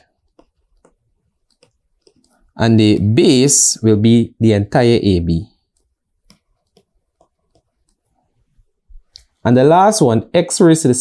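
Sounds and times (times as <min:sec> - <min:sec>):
stylus tapping on tablet screen: 0:00.0 - 0:02.6, 0:05.6 - 0:09.4.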